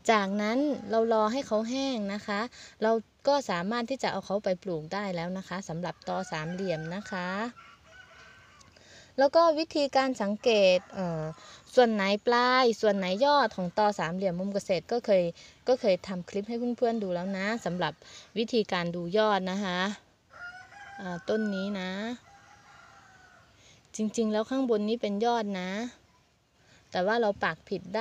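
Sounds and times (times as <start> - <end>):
rooster crowing: 6.1 - 8.8, 20.3 - 23.5.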